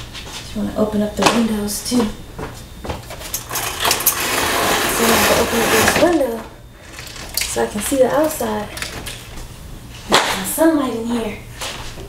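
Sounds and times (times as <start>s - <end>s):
window opening scraping rattle: 3.4s - 7.6s.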